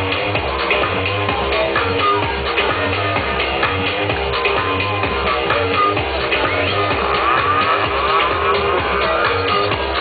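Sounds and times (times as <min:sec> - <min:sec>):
loud minimal techno: 0:00.0 - 0:10.0
steady kick drum beat: 0:00.0 - 0:10.0.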